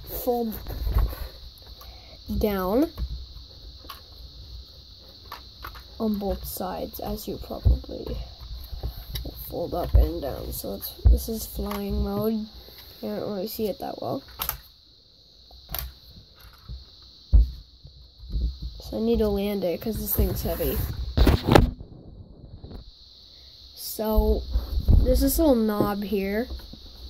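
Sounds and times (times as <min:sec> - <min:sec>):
steady high whine: 0:00.0 - 0:27.0
dull thump: 0:17.3 - 0:17.6.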